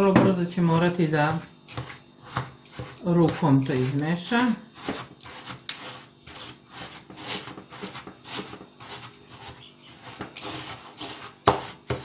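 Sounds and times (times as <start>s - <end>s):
hands rubbing crumbs in a bowl: 1.7s - 12.0s.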